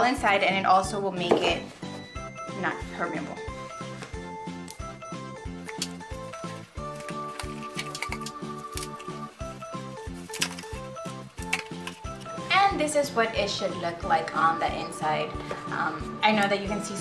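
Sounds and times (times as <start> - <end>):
background music with steady beat: 0.0 - 17.0.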